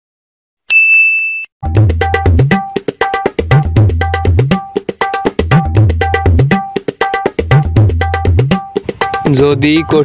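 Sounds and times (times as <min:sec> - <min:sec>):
bright bell ding: 0:00.7 - 0:01.5
drum-heavy music with deep bass: 0:01.6 - 0:10.0.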